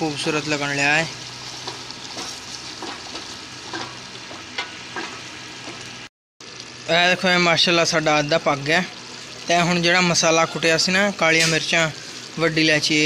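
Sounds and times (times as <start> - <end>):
chicken sizzling in a pot: 0.0 - 13.0.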